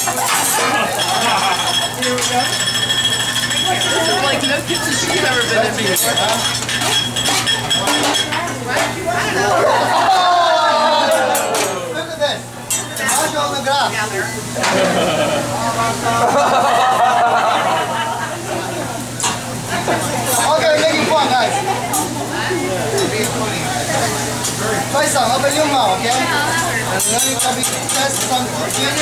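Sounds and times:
metal utensils clinking on griddle: 0.0s - 9.0s, 12.7s - 13.4s, 19.2s - 22.2s, 22.9s - 29.0s
voices talking: 0.0s - 16.8s, 17.8s - 29.0s
person laughing: 14.7s - 15.6s.

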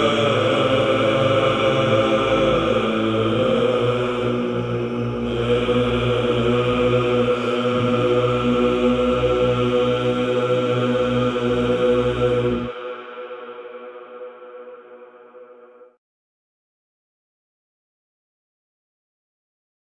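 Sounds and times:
chant with melodic line: 0.0s - 16.0s
low drone: 0.0s - 16.0s.

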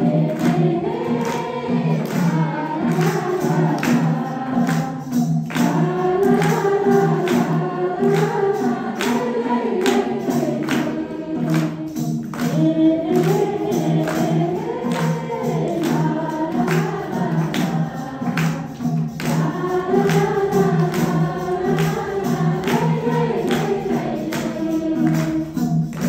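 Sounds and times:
percussive beat: 0.0s - 26.0s
women singing devotional song: 0.0s - 26.0s.

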